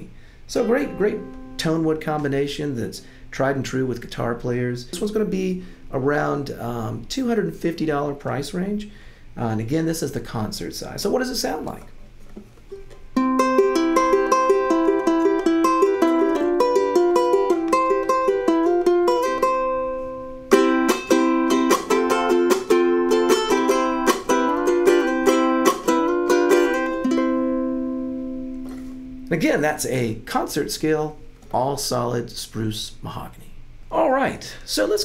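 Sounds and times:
ukulele plucked notes and chords: 0.5 - 2.5, 4.9 - 6.3, 12.7 - 29.8.

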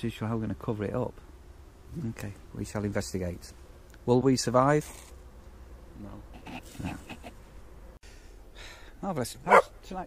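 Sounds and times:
low steady outdoor background: 0.0 - 10.0.

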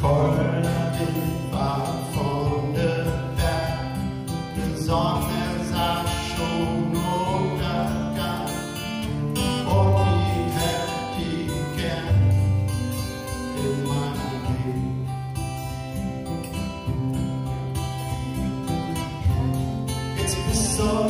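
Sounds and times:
acoustic guitars playing folk: 0.0 - 21.0.

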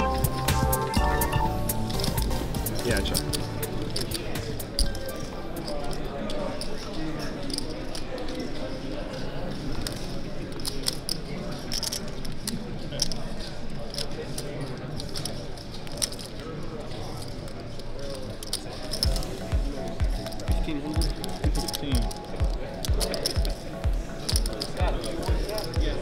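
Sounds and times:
background music: 0.0 - 6.0, 19.0 - 26.0
murmur of many voices: 0.0 - 26.0
poker chips clicking: 0.1 - 26.0.

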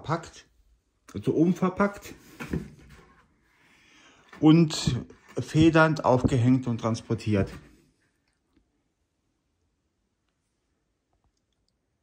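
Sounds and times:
cardboard scraping and rustling: 2.1 - 3.3.

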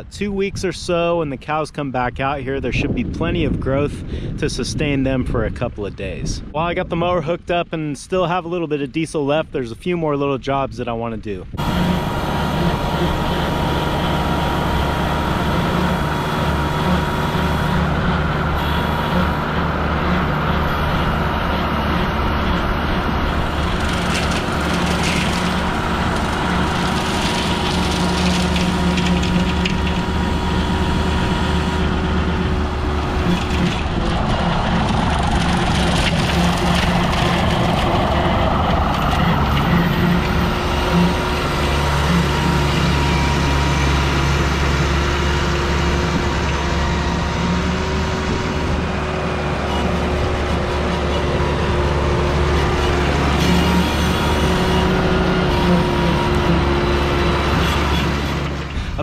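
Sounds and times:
tractor diesel engine running: 11.4 - 59.0
rotary mower blades grinding vines: 11.6 - 59.0.

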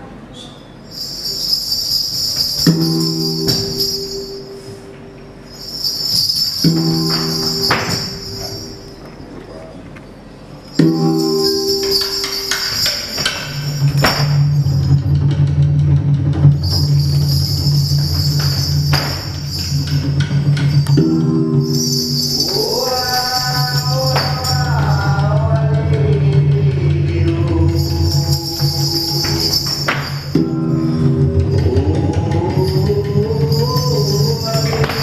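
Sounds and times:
small metal bells jingling: 0.8 - 4.8, 5.4 - 9.6, 10.6 - 15.2, 16.5 - 26.0, 27.7 - 30.6, 31.5 - 35.0
low gongs pulsing: 2.4 - 9.4, 10.6 - 35.0.

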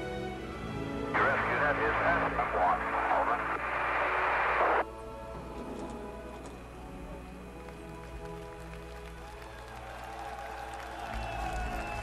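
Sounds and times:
orchestral film music: 0.0 - 3.0, 4.8 - 12.0
din of many voices: 1.1 - 3.7.

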